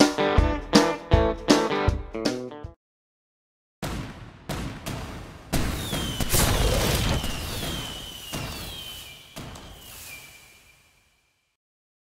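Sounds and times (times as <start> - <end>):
firework bangs: 3.8 - 11.2
descending firework whistle: 5.6 - 11.6.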